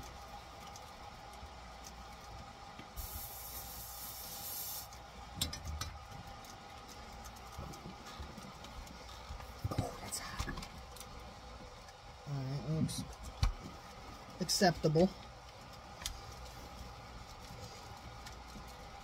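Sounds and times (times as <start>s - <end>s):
solder sizzling under soldering iron: 3.0s - 5.0s
faint low hum: 5.0s - 19.0s.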